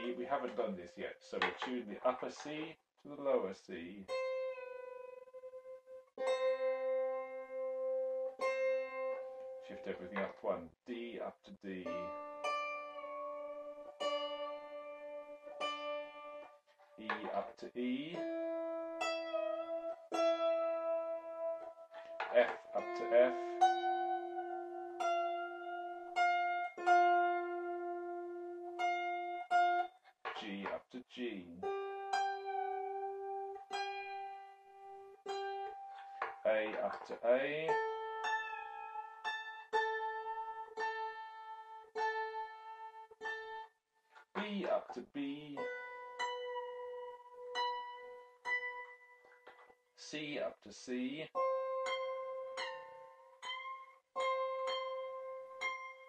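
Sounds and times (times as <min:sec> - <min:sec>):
harp strings plucked and ringing: 0:00.0 - 0:02.7, 0:19.0 - 0:27.8, 0:51.4 - 0:56.0
harp strings plucked: 0:00.0 - 0:02.8, 0:08.2 - 0:10.6, 0:11.7 - 0:34.3, 0:35.2 - 0:41.3, 0:43.2 - 0:49.8.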